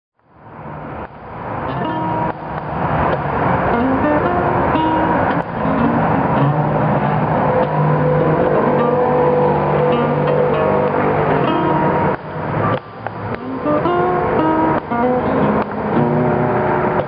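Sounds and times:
highway traffic noise: 0.2 - 17.0
blues acoustic guitar: 1.6 - 17.0.

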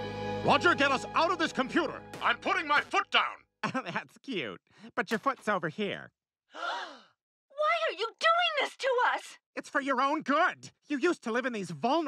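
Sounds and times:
cartoon character breathy sigh: 6.5 - 7.2.

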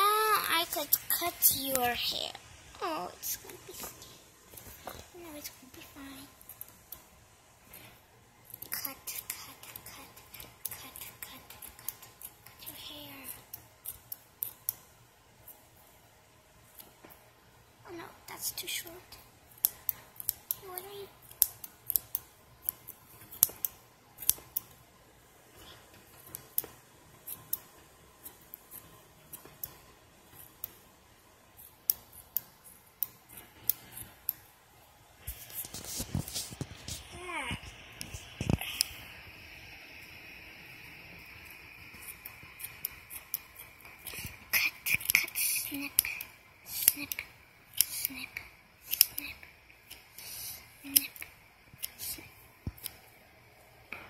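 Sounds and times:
scissors snipping hair: 8.5 - 14.9, 19.5 - 24.8, 25.6 - 30.8, 31.6 - 34.5, 41.4 - 53.1.

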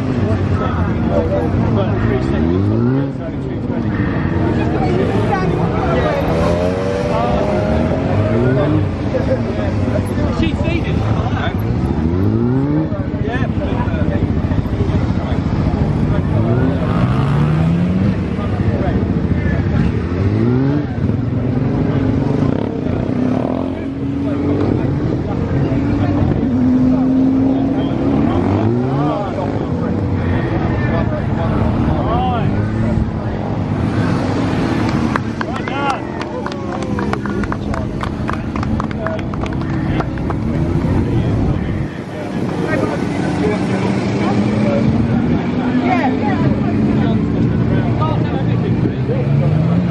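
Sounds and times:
motorcycle engine revving: 0.0 - 49.9.

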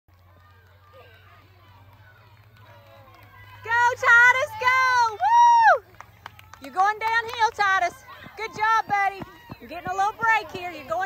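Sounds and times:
onlookers chattering: 0.1 - 11.0.

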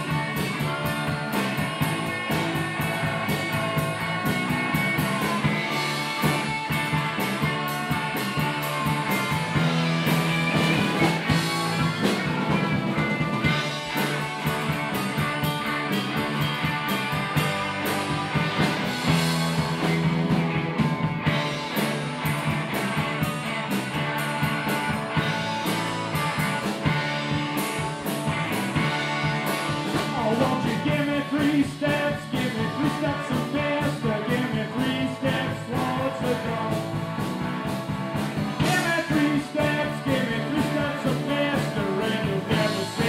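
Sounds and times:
rock band playing: 0.0 - 43.0
man singing into microphone: 30.1 - 36.8, 38.6 - 43.0.

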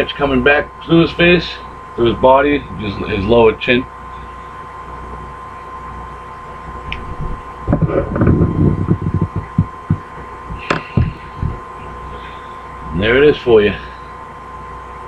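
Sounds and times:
steady hum: 0.0 - 15.0
low irregular thuds and rumbles: 6.9 - 11.7.

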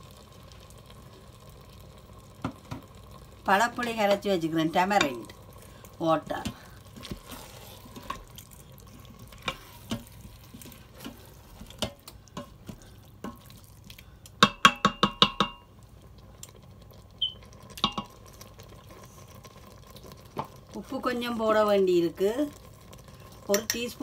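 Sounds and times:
wooden spoon stirring curry: 5.0 - 14.0
spoon knocking steel pot: 14.4 - 15.7, 17.8 - 18.1, 23.5 - 23.8.

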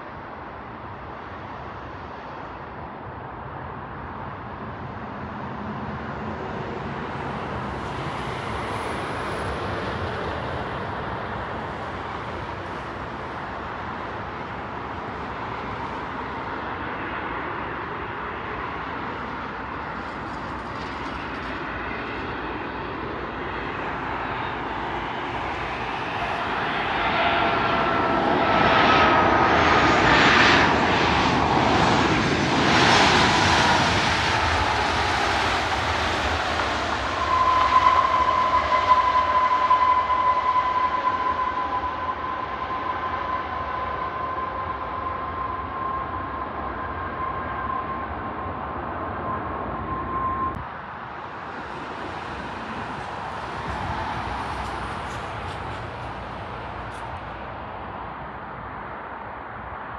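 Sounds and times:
jet engines passing: 0.0 - 59.9
steady high engine whine: 0.0 - 59.9.

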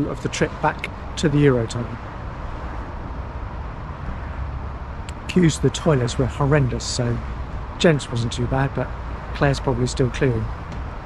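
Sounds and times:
road traffic rumble: 0.0 - 11.0.

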